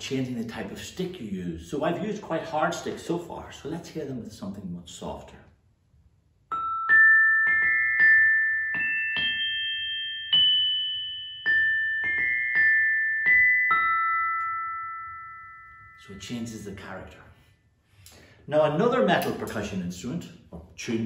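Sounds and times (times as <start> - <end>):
glockenspiel struck with soft mallets: 6.5 - 16.4.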